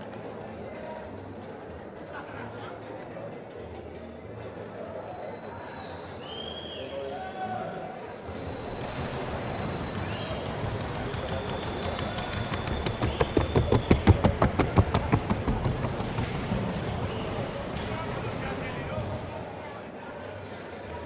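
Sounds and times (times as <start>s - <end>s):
crowd murmur: 0.0s - 21.0s
hoofbeats on wooden board: 8.7s - 17.4s.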